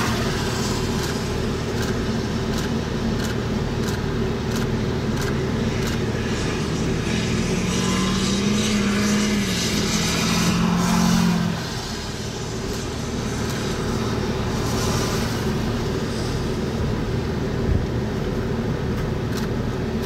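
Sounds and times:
car passing on wet road: 0:00.0 - 0:02.3, 0:06.2 - 0:17.1
low wind rumble: 0:00.0 - 0:20.0.

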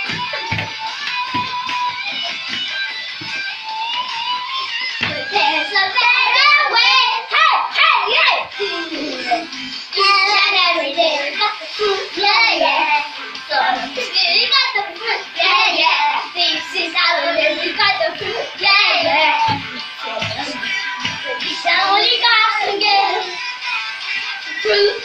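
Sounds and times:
backing music: 0:00.0 - 0:25.0
children singing: 0:03.8 - 0:25.0.

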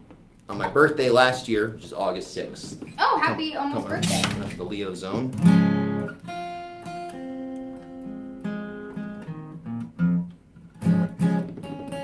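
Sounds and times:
acoustic guitar playing: 0:03.0 - 0:12.0.

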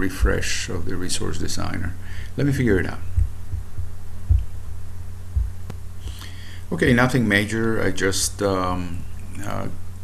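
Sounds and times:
dull low thumps: 0:00.0 - 0:00.5, 0:03.0 - 0:06.2
low electrical hum: 0:00.0 - 0:10.0.

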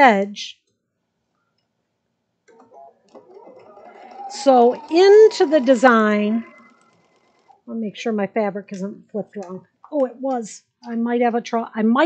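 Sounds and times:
sewing machine stitching: 0:02.5 - 0:07.7.

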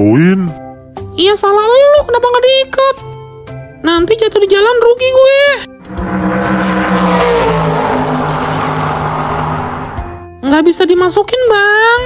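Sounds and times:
vehicle engine running: 0:05.8 - 0:10.2.

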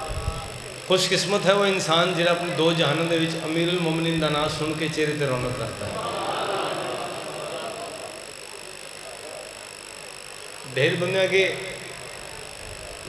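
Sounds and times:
man speaking over loudspeakers: 0:00.9 - 0:05.9, 0:10.7 - 0:11.9.

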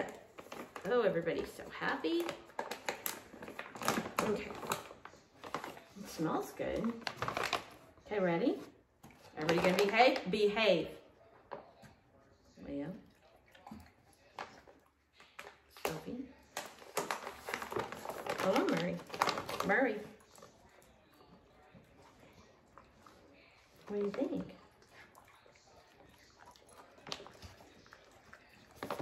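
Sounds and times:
dogs chewing and crunching treats: 0:00.0 - 0:29.0
paper bag crinkling: 0:06.9 - 0:07.9, 0:16.5 - 0:20.0.

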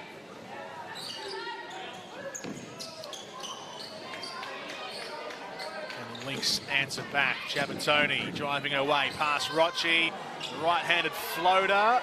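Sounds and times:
voices in a large hall: 0:00.0 - 0:12.0
sneakers squeaking: 0:00.9 - 0:06.4.

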